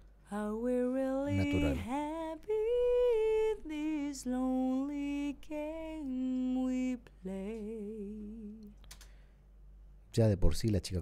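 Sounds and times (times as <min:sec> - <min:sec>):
woman singing held notes: 0:01.2 - 0:02.1.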